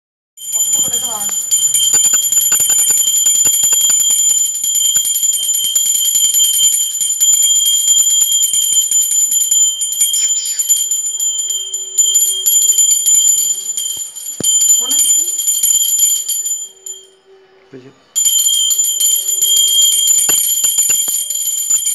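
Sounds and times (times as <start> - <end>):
hand bell ringing: 0.4 - 17.2, 18.2 - 21.9.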